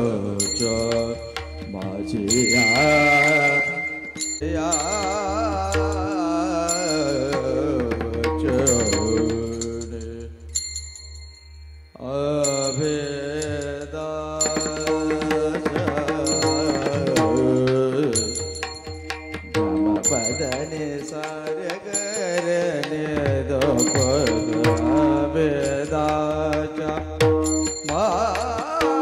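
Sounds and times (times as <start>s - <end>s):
man singing a long held note: 0.0s - 10.5s, 12.0s - 18.4s, 27.9s - 29.0s
drum strokes: 0.3s - 11.4s, 14.4s - 29.0s
bright metallic ring: 0.4s - 7.6s, 8.7s - 15.4s, 16.2s - 22.8s, 23.8s - 26.0s, 27.4s - 28.6s.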